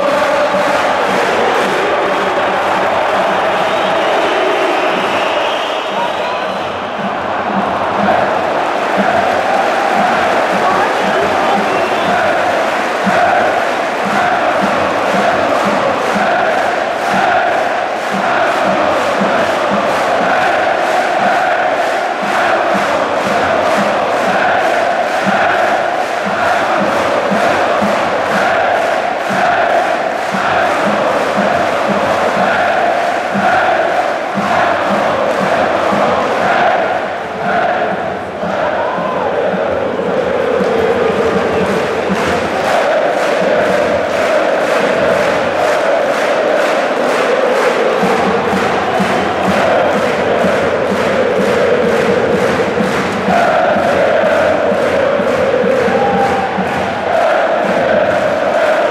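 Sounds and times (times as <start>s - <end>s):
football crowd chanting: 0.0s - 58.9s
steady drum beat: 0.0s - 58.9s.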